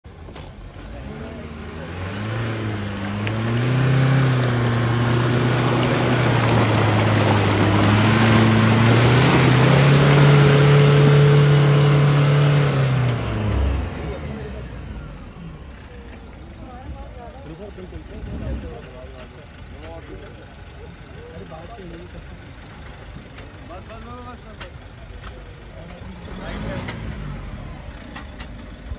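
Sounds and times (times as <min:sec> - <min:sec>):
truck engine revving hard: 0:00.6 - 0:15.7, 0:26.0 - 0:28.3.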